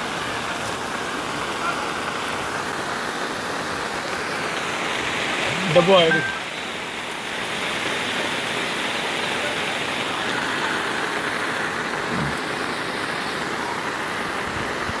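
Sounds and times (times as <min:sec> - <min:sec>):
rain and floodwater rushing: 0:00.0 - 0:15.0
faint voice: 0:05.4 - 0:06.4.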